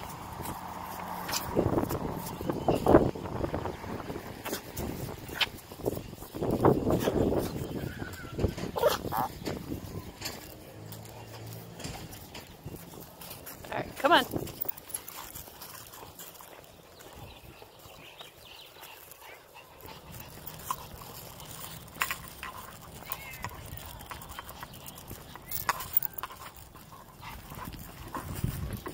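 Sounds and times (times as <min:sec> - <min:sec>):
dog claws clicking on concrete: 0:00.0 - 0:03.0, 0:14.3 - 0:28.9
footsteps on grass: 0:00.0 - 0:28.9.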